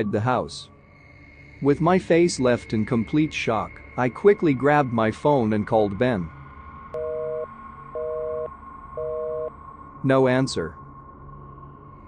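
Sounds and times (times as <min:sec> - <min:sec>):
telephone busy signal: 0:07.0 - 0:09.5.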